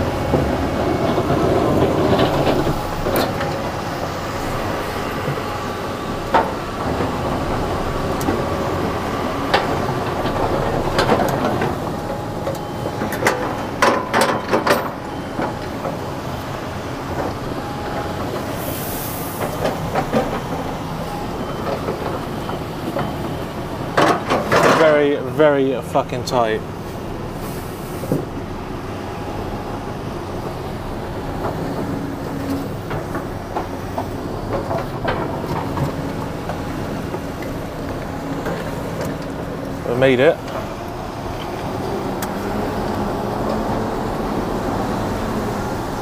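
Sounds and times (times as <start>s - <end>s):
truck knocks and rattles: 0.0s - 27.4s, 28.0s - 46.0s
diesel engine running: 0.0s - 46.0s.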